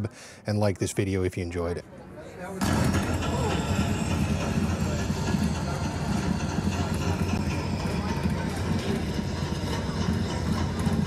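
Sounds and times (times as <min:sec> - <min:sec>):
crowd chatter: 0:01.0 - 0:11.0
low rattling rumble: 0:02.6 - 0:11.0.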